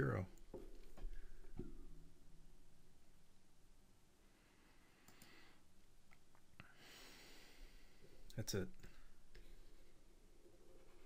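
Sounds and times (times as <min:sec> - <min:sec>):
faint clicks: 0:05.0 - 0:05.4.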